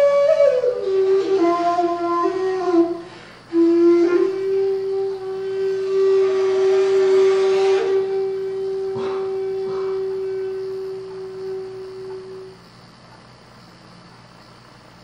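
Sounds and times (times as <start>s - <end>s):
bamboo flute long note: 0.0s - 12.6s.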